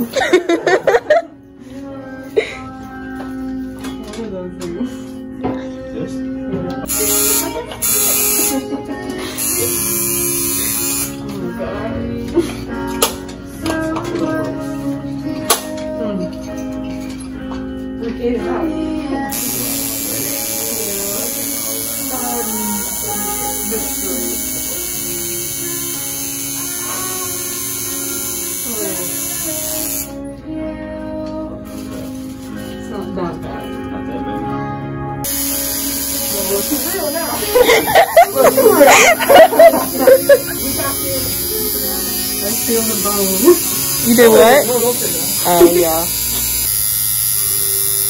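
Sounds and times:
tattoo machine buzzing: 6.8 - 11.4, 19.3 - 30.2, 35.2 - 48.0.

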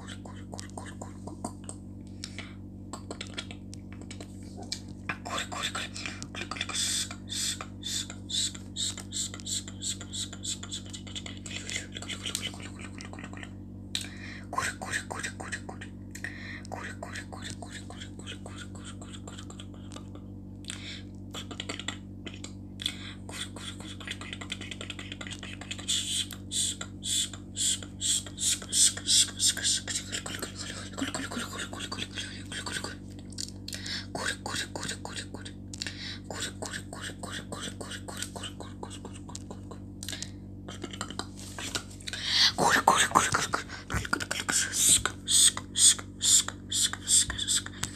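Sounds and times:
person whispering syllables: 0.0 - 1.6, 2.3 - 20.1, 20.7 - 33.0, 33.7 - 47.9
steady low hum: 0.0 - 47.9.

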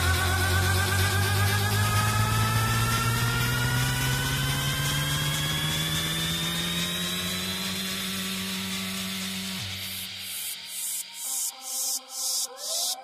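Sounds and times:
rising buzzing synth riser: 0.0 - 13.0.

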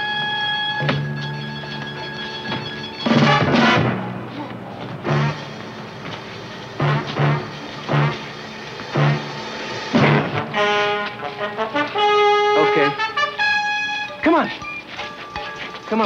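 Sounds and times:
brass sustained chords: 0.0 - 14.4.

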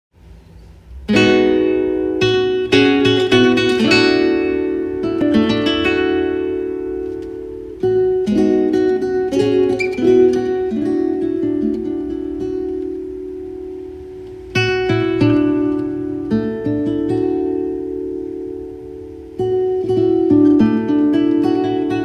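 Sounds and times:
classical guitar playing: 0.6 - 22.0.

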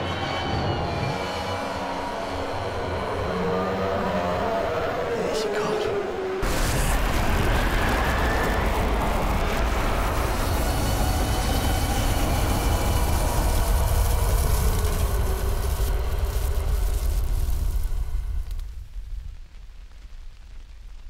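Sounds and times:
flamethrower rushing fire: 6.3 - 21.0.

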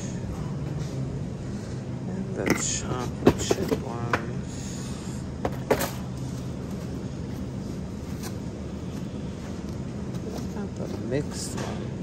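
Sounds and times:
low rumble of supermarket: 0.0 - 12.0.

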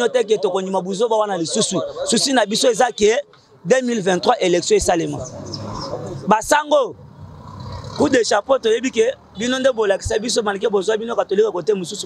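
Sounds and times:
man speaking: 0.0 - 5.4, 6.0 - 7.0, 8.0 - 12.0
street traffic hum: 0.0 - 12.0.

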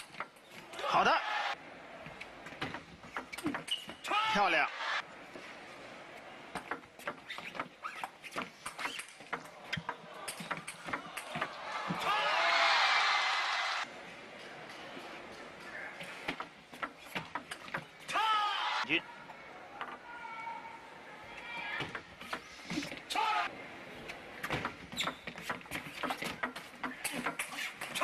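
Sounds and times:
crowd cheering and applause: 0.8 - 1.6, 4.7 - 5.0, 11.0 - 13.9.

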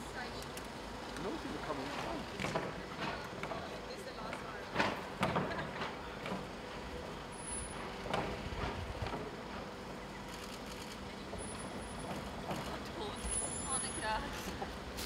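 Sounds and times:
motor vehicle engine rumbling: 0.0 - 15.0.

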